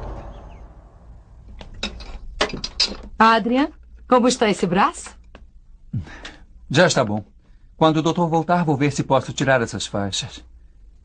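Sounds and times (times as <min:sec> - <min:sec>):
dramatic music sting: 0:00.0 - 0:01.4.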